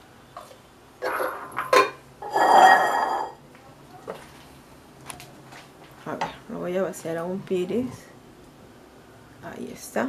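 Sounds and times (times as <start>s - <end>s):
ringing metallic scrape: 2.2s - 3.4s.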